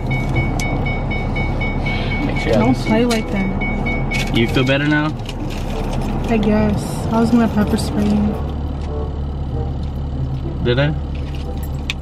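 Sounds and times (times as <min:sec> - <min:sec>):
car warning chime beeping: 0:00.0 - 0:05.2
car low steady hum: 0:00.0 - 0:12.0.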